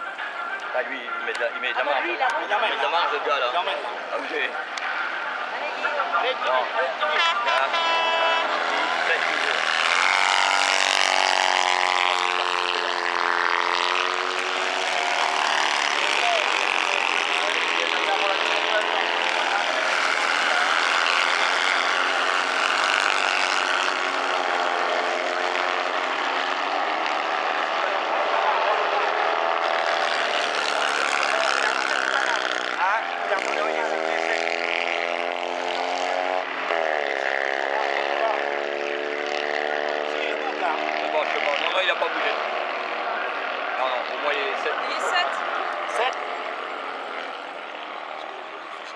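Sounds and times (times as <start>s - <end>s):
off-road buggy engines revving: 0.0s - 48.9s.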